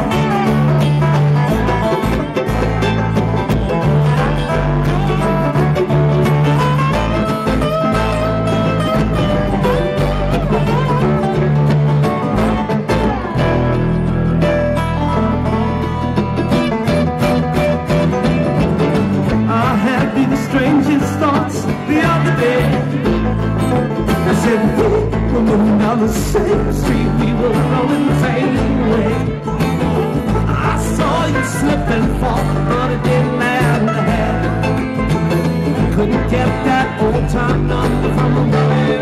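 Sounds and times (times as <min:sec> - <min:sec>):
bluegrass string band playing: 0:00.0 - 0:39.0
sliding steel guitar notes: 0:00.0 - 0:39.0.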